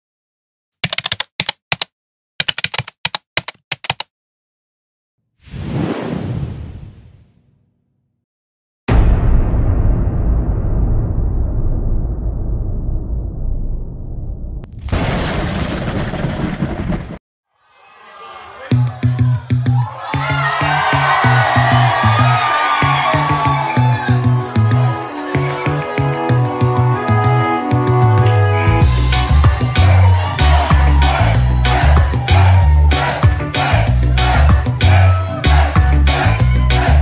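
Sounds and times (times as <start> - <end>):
keyboard typing clicks: 0.8 - 4.1
music: 18.7 - 37.0.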